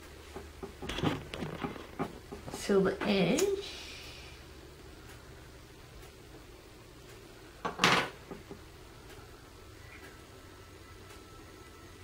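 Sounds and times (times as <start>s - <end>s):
small objects clattering on wooden table: 0.6s - 2.6s, 7.6s - 8.6s.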